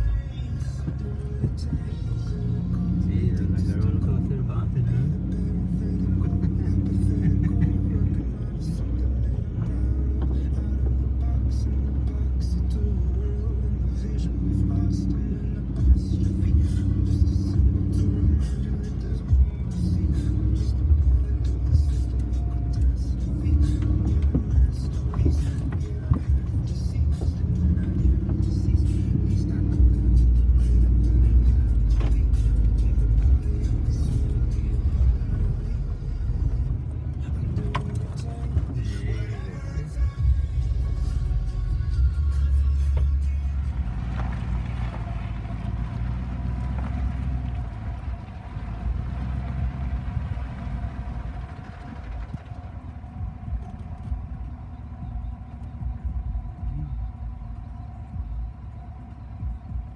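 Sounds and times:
music with vocals: 0.0s - 59.9s
pickup engine and tyres in mud: 0.0s - 59.9s.

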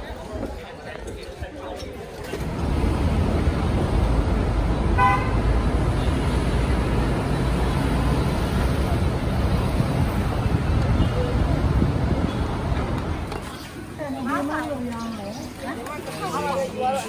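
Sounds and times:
traffic rumble: 0.0s - 17.0s
vehicle horn toot: 5.0s - 5.4s.

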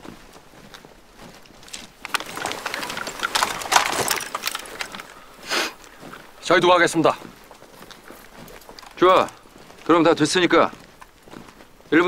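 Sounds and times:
footsteps: 0.0s - 12.0s
rattle and knock of gear: 1.3s - 11.5s.

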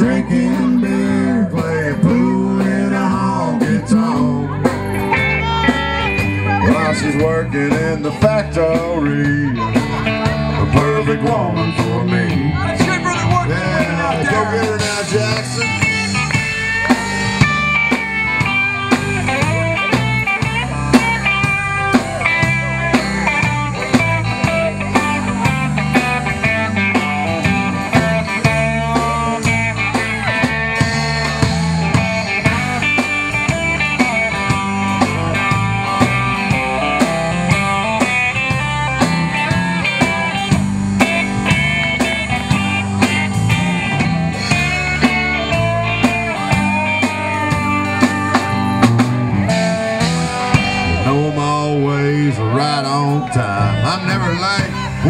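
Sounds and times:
bass guitar: 0.0s - 55.0s
electric guitar lead: 0.0s - 55.0s
steady drum beat: 0.0s - 55.0s.

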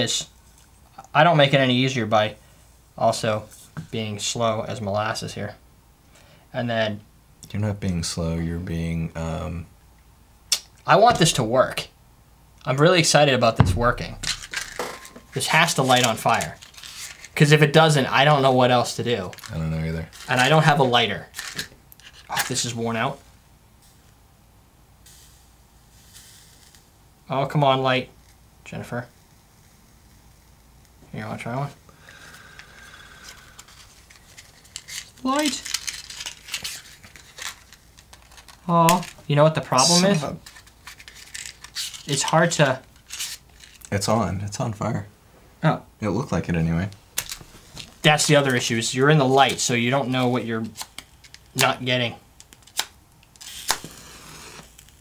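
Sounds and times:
match striking and flaring: 10.5s - 11.6s, 25.1s - 26.9s, 52.4s - 55.0s
lit match hissing: 13.9s - 17.4s, 25.0s - 27.2s, 28.2s - 31.0s, 32.0s - 43.9s, 52.4s - 55.0s.

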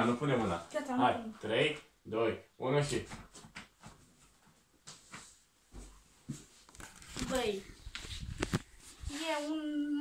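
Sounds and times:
faint rustling: 2.9s - 10.0s.

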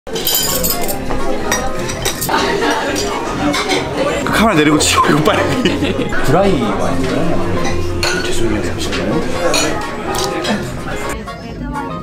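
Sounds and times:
plates and cutlery clattering: 0.1s - 4.4s, 5.2s - 11.2s.

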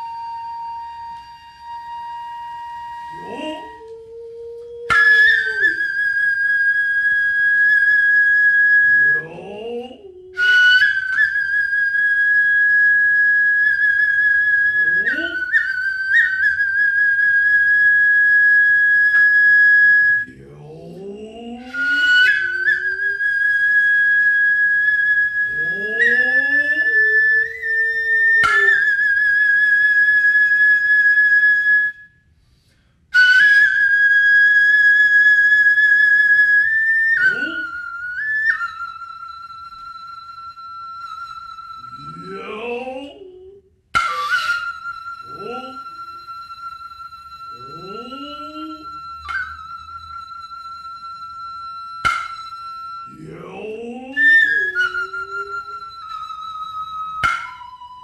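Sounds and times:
flute playing piercing high notes: 0.0s - 32.2s, 33.1s - 58.0s.

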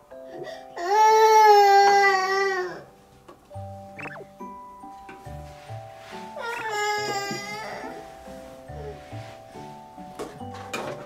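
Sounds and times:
toddler wailing: 0.8s - 2.9s, 6.4s - 8.0s.

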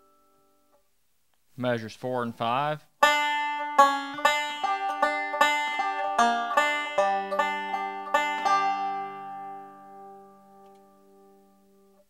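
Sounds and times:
banjo chord ringing: 3.0s - 12.0s.

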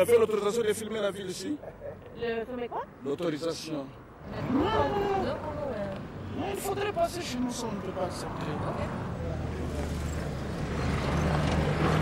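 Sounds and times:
vehicle engine hum: 4.1s - 12.0s.

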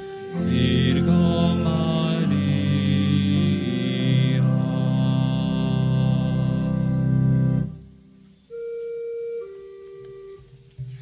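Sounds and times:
organ holding soft notes: 0.0s - 11.0s.

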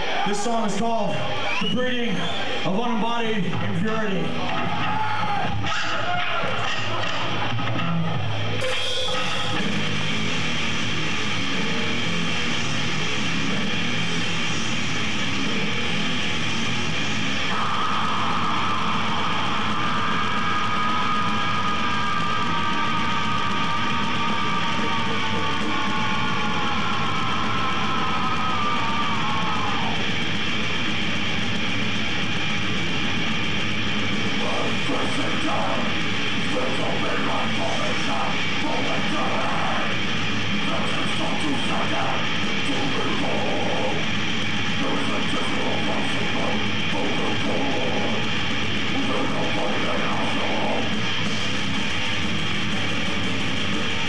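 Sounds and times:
death metal band playing live: 2.6s - 54.0s.

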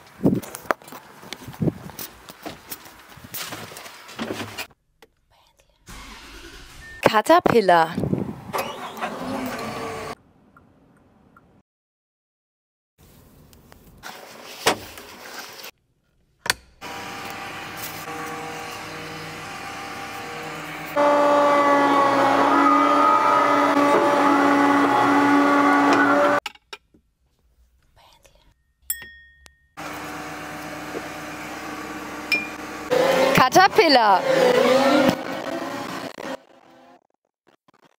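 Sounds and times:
excavator engine hydraulic whine: 5.9s - 7.1s, 8.5s - 10.2s, 16.8s - 26.4s.

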